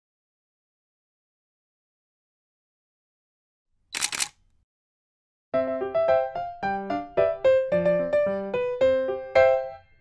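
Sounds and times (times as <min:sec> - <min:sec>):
camera shutter double click: 0:04.0 - 0:04.4.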